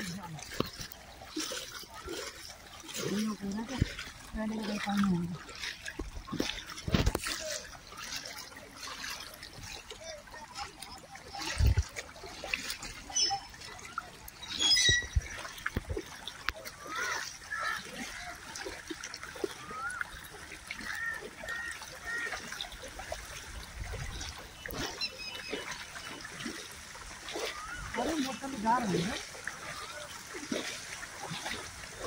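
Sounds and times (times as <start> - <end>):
footsteps splashing in water: 0.0 - 32.0.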